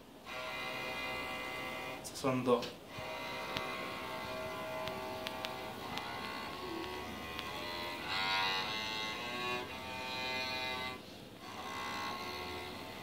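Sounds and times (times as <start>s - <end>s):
electric cello bowed notes: 0.2s - 13.0s.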